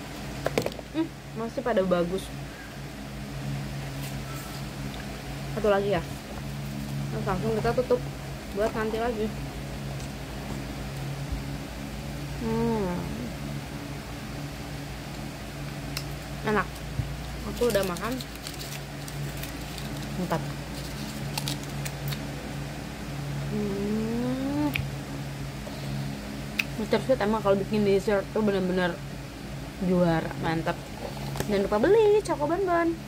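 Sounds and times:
electric fan motor humming: 0:00.0 - 0:33.0
woman humming hmm: 0:12.4 - 0:13.5, 0:23.5 - 0:24.9.

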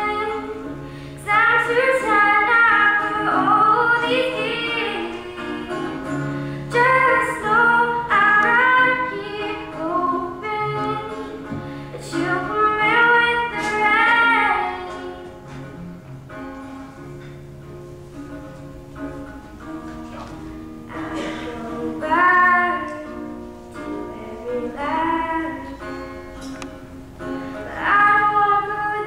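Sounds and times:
girl singing: 0:00.0 - 0:15.4, 0:20.9 - 0:26.1, 0:27.6 - 0:29.0
acoustic guitar: 0:00.0 - 0:29.0.

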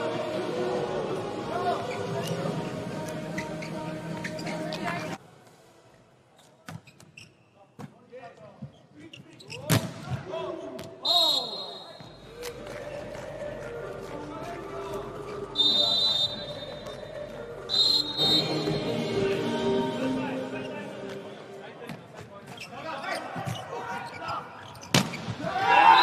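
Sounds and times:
sneakers squeaking on court: 0:03.2 - 0:05.2, 0:06.4 - 0:07.9, 0:21.9 - 0:25.4
referee whistle blasts: 0:11.0 - 0:12.2, 0:15.6 - 0:16.9, 0:17.7 - 0:18.9.

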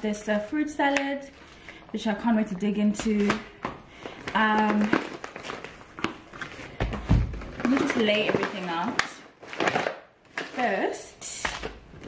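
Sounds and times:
groceries tapping and knocking: 0:02.8 - 0:12.0.

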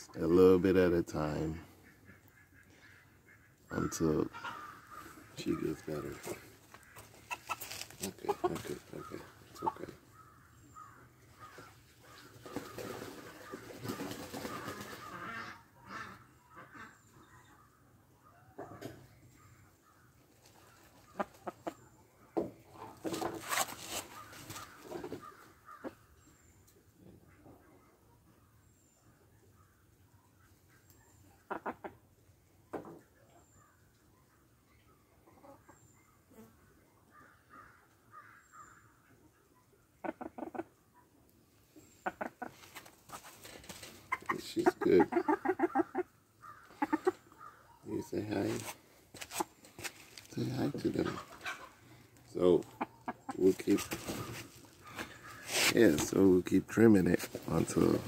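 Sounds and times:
wings flapping: 0:12.2 - 0:15.3, 0:53.8 - 0:55.1
feathers rustling: 0:53.8 - 0:55.8.

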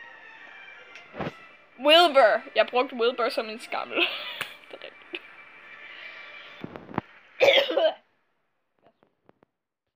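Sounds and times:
person coughing: 0:07.4 - 0:08.0.

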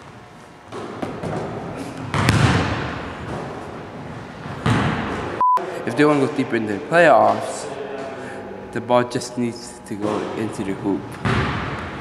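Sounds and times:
basketball bouncing in a gym: 0:00.7 - 0:03.8, 0:04.4 - 0:05.4, 0:11.1 - 0:12.0
short electronic beep: 0:05.4 - 0:05.6.

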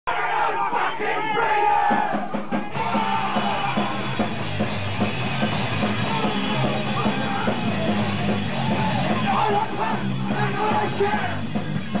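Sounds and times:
long held shout: 0:00.1 - 0:04.2
crowd shouting: 0:00.1 - 0:12.0.

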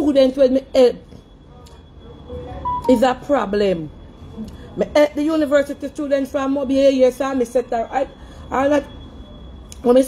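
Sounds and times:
faint high whine: 0:00.0 - 0:10.0.

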